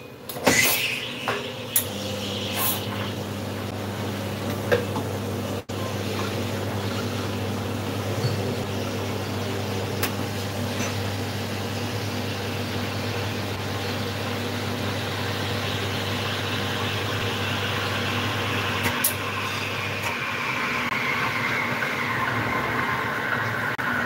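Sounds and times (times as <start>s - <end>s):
espresso machine humming and hissing: 0.3s - 24.0s.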